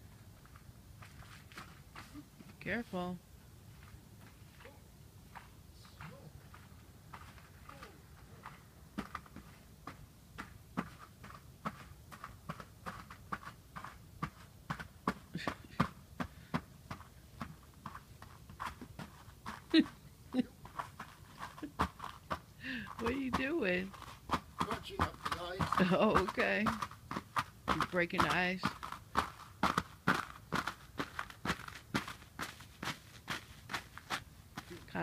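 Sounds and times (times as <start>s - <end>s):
footsteps crunching icy snow: 20.7s - 35.0s.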